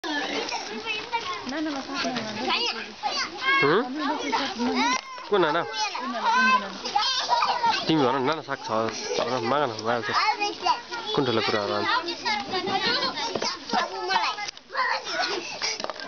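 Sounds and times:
children shouting at play: 0:00.1 - 0:16.0.

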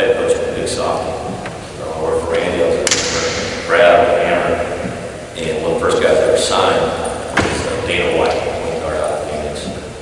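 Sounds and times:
man lecturing: 0:00.0 - 0:09.9
sharp crack: 0:02.8 - 0:03.9.

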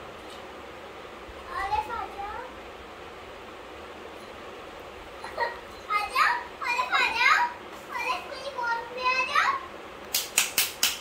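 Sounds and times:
young child talking: 0:01.4 - 0:02.6, 0:05.2 - 0:09.8.

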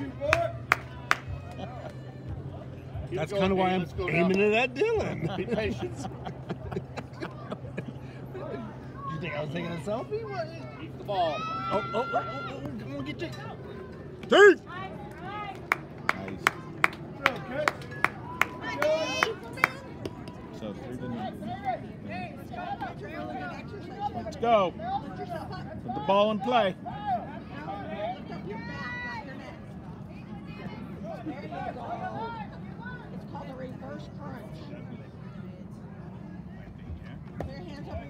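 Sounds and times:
person clapping hands: 0:00.3 - 0:01.3
sharp handclaps: 0:00.3 - 0:01.4, 0:15.5 - 0:20.3.

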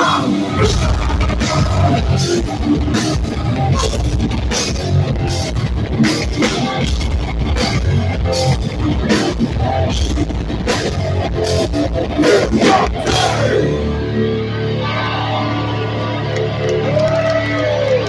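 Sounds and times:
distorted electric guitars and bass: 0:00.0 - 0:18.0
fast drumming: 0:00.6 - 0:13.5.

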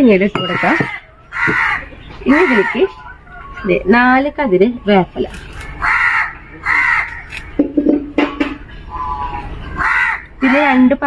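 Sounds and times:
crows cawing: 0:00.4 - 0:03.3, 0:05.6 - 0:07.6, 0:08.9 - 0:11.0.

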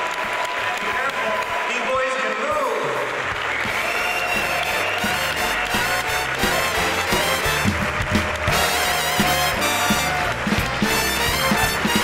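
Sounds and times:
applause: 0:00.0 - 0:12.0.

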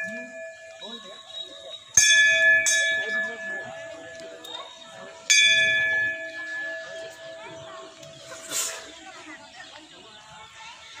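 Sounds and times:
metal bell ringing: 0:00.0 - 0:07.7
faint voices: 0:00.0 - 0:11.0.

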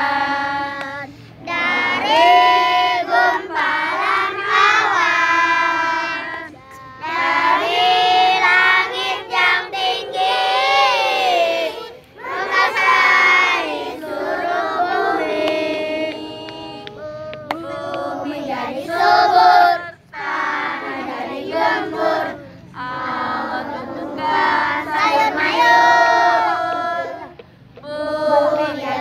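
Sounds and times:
child singing: 0:00.0 - 0:29.0.

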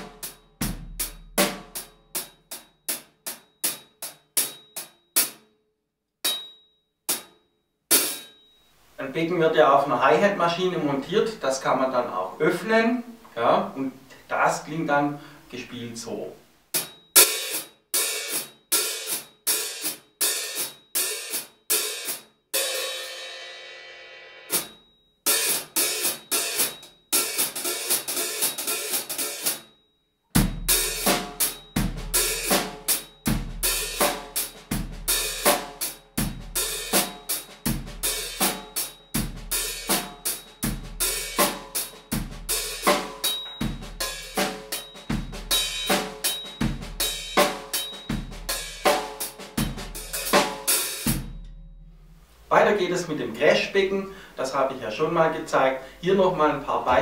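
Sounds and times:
hi-hat played with drumsticks: 0:00.0 - 0:05.4, 0:07.1 - 0:08.3, 0:16.7 - 0:23.2, 0:24.5 - 0:29.7, 0:30.4 - 0:52.5
bass drum thump: 0:51.1 - 0:52.5.

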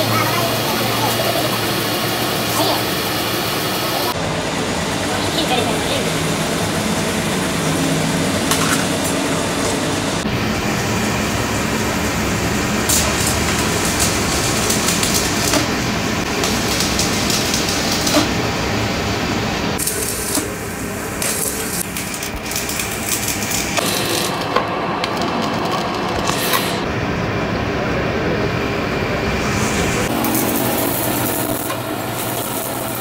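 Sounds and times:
electric arc welding crackling hiss: 0:10.4 - 0:24.5, 0:25.2 - 0:26.9, 0:29.4 - 0:33.0.

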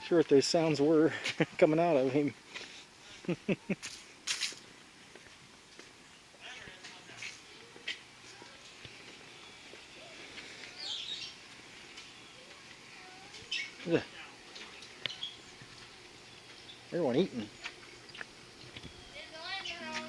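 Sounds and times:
faint distant voices: 0:06.2 - 0:20.0
bird chirping: 0:09.1 - 0:20.0.

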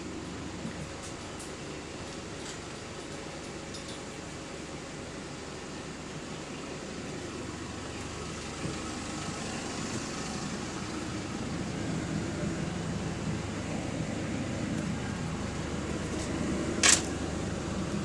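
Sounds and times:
bus running noise from inside: 0:00.0 - 0:18.0.

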